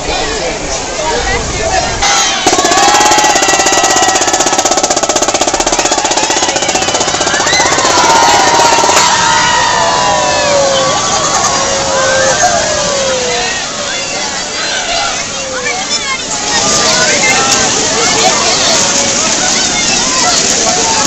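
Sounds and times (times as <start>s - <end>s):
children shouting: 1.8s - 21.0s
loud fast rattling pulse: 2.5s - 9.4s.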